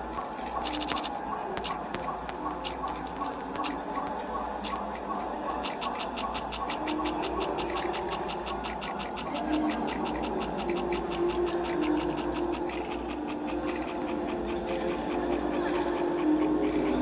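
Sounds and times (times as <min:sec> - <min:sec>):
rapid mechanical ticking: 0:00.0 - 0:17.0.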